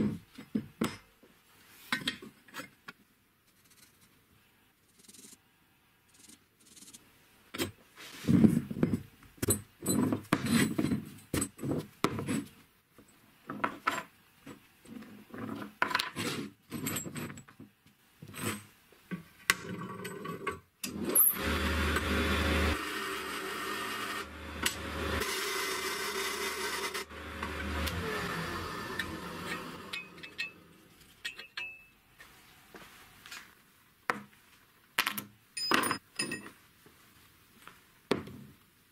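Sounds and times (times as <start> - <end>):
disc sander grinding metal: 21.3 - 30.7.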